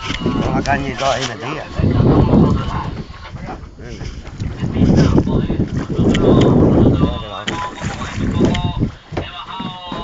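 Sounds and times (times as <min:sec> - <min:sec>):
water sloshing against boat hull: 0:00.0 - 0:10.0
wind on microphone: 0:00.0 - 0:10.0.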